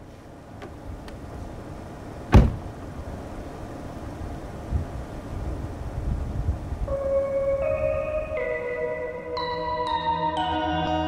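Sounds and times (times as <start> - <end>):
traffic or wind rumble: 0.0 - 9.8
bell-like mallet melody: 6.9 - 11.0.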